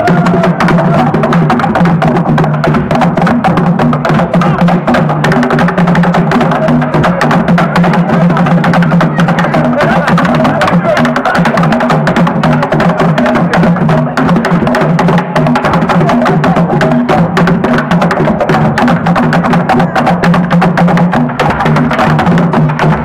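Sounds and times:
percussion music: 0.0s - 23.0s.

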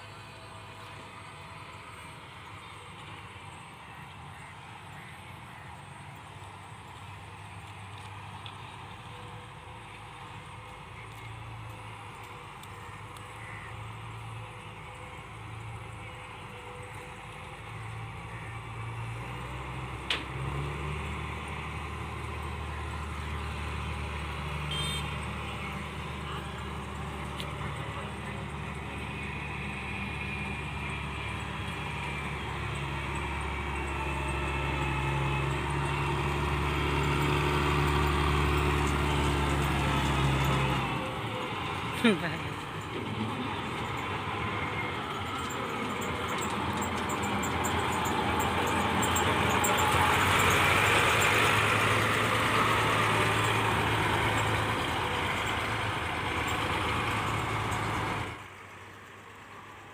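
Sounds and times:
combine harvester diesel engine: 0.0s - 59.9s.

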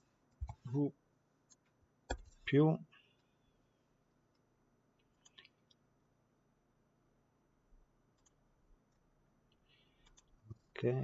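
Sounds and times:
computer mouse clicks: 4.3s - 5.8s, 8.1s - 8.4s, 9.5s - 10.4s.

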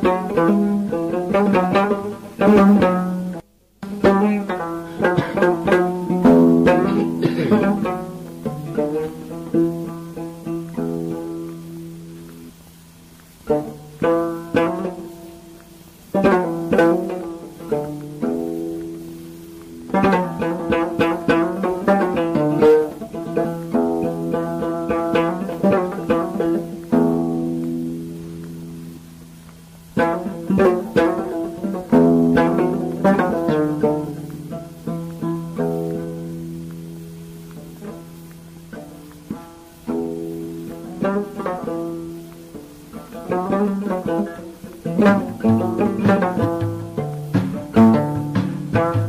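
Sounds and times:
plucked string instrument: 0.0s - 49.0s.

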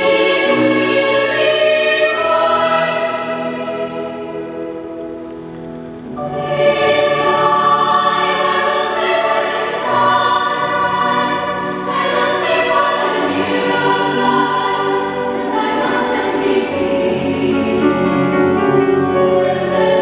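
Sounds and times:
choir singing in a church: 0.0s - 20.0s.

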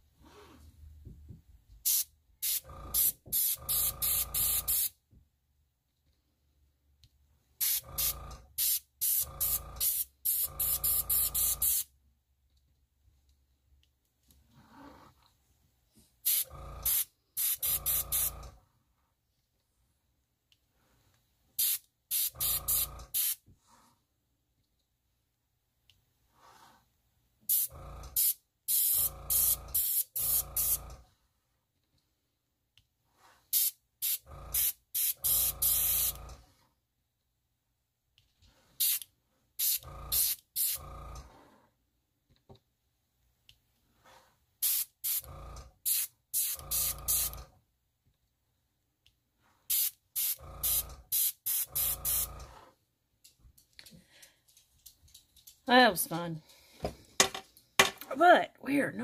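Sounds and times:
airbrush puffs of air: 1.8s - 4.9s, 7.6s - 11.9s, 16.2s - 18.3s, 21.6s - 23.4s, 33.2s - 36.2s, 38.7s - 40.8s, 44.6s - 45.3s, 45.9s - 47.4s, 49.6s - 52.3s.

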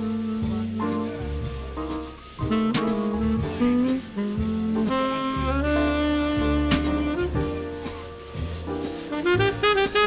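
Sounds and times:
tenor saxophone: 0.0s - 1.2s, 2.4s - 7.7s, 9.1s - 10.0s
bass: 0.0s - 10.0s
drums with cymbals: 0.0s - 10.0s.

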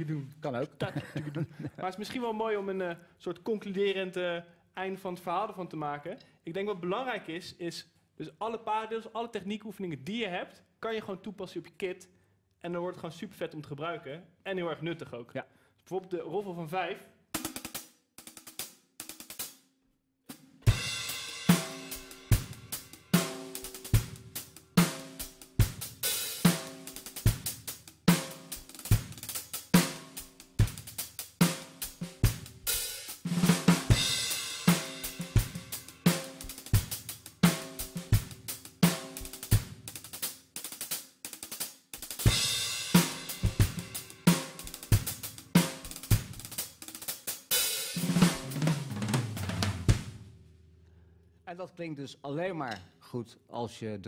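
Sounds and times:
drum kit groove: 17.3s - 19.7s, 20.3s - 50.4s.

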